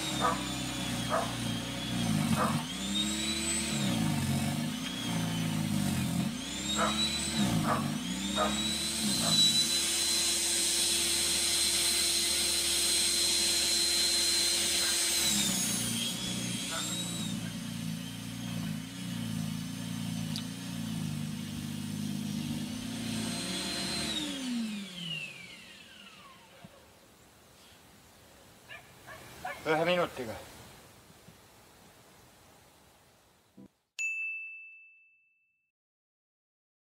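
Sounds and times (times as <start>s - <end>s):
electric snow blower whining: 0.0s - 27.0s.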